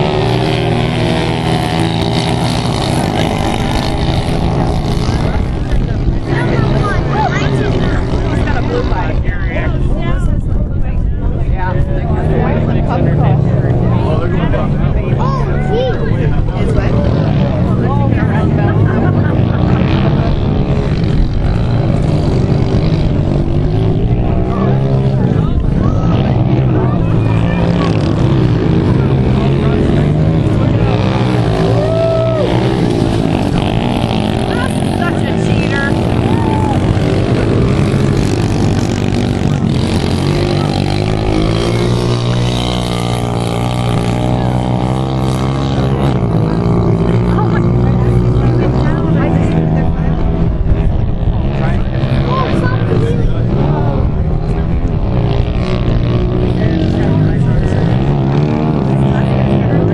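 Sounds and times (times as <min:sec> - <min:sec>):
people talking: 0:00.0 - 0:59.9
pit bike engines running: 0:00.0 - 0:59.9.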